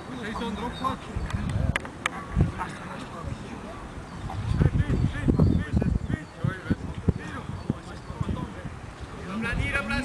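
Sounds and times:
players calling: 0:00.0 - 0:10.0.

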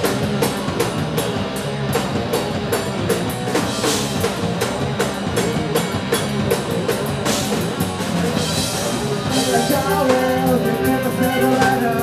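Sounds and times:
drum kit beating: 0:00.0 - 0:12.0
rock band playing: 0:00.0 - 0:12.0.

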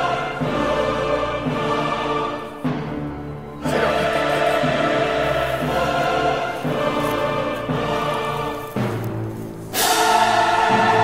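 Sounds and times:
choir singing held chords: 0:00.0 - 0:11.0.

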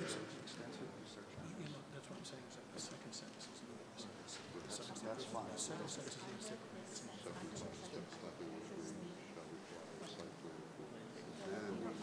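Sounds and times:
murmured conversation: 0:00.0 - 0:12.0.

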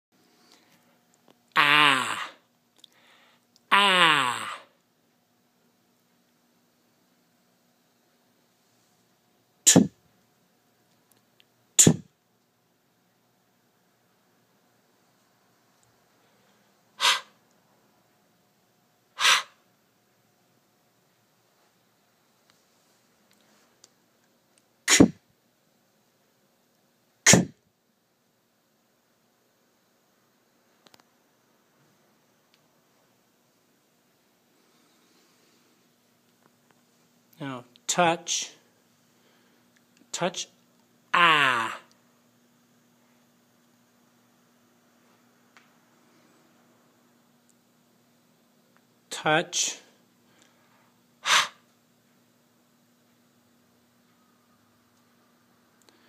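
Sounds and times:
low voice saying ah: 0:01.6 - 0:02.4, 0:03.7 - 0:04.6, 0:41.1 - 0:41.9
person saying k sound: 0:01.6 - 0:02.4, 0:03.7 - 0:04.7, 0:09.7 - 0:10.0, 0:11.8 - 0:12.0, 0:27.3 - 0:27.5, 0:37.4 - 0:38.6, 0:40.1 - 0:41.9, 0:49.1 - 0:49.9.

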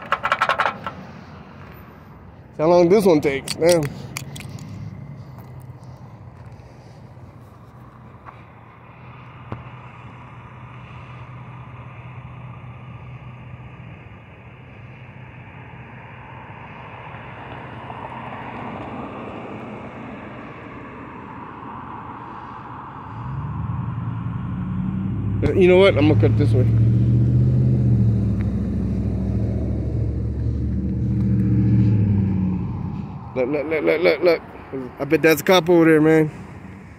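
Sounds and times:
street traffic noise: 0:00.0 - 0:36.9
vehicle engine running: 0:23.5 - 0:33.7.

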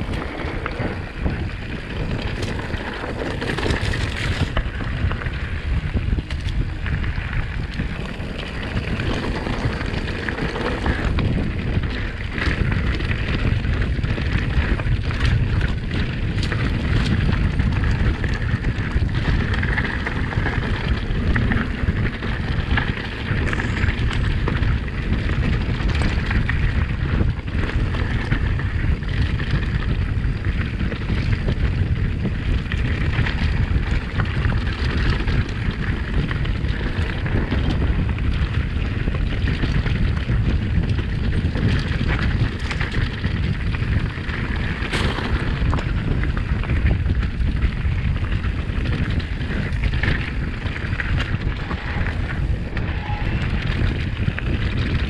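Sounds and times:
bike knocks and rattles: 0:00.0 - 0:55.0
tyres rolling on gravel: 0:00.0 - 0:55.0
wind buffeting microphone: 0:00.0 - 0:55.0.

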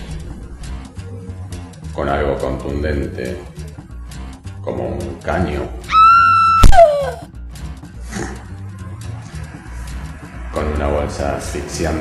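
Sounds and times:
background music: 0:00.0 - 0:12.0
high-pitched scream: 0:05.9 - 0:07.3
short falling cry: 0:05.9 - 0:07.3.

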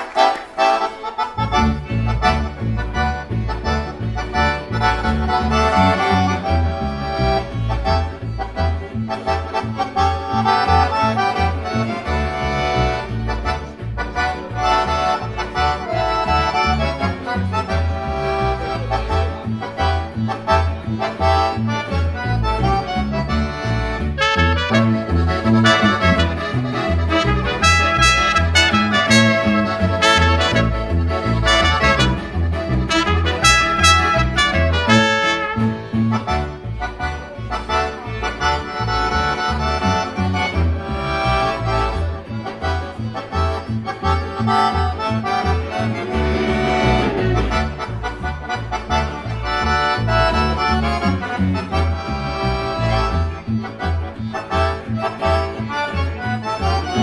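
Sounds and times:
accordion: 0:00.0 - 0:57.0
double bass and guitar beat: 0:00.6 - 0:57.0
clarinet and trumpet: 0:23.3 - 0:55.5.

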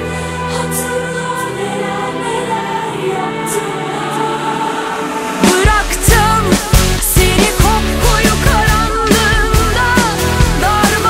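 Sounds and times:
choir-like sung harmonies: 0:00.0 - 0:11.0.

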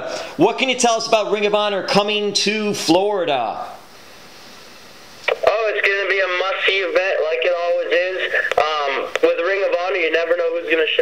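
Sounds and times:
man talking over telephone line: 0:00.0 - 0:03.8, 0:05.3 - 0:11.0.

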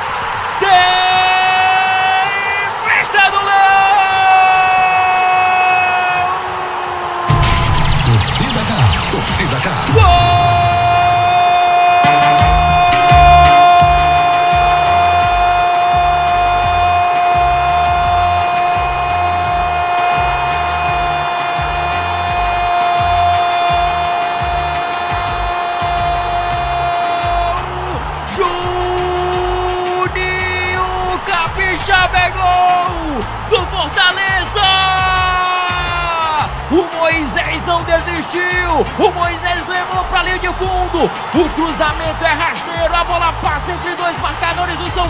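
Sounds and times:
commentator shouting goal: 0:00.6 - 0:06.4, 0:08.6 - 0:45.0
celebration music with steady beat: 0:07.3 - 0:45.0.

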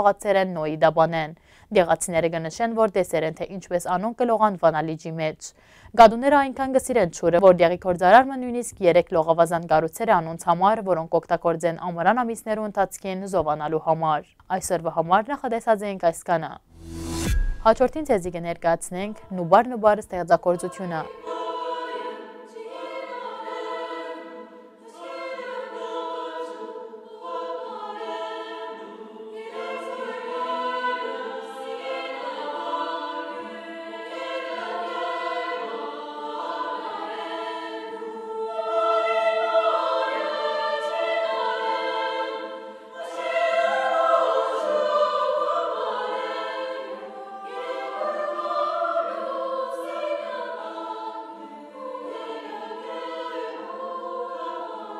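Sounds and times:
women's choir singing: 0:17.8 - 0:54.9.

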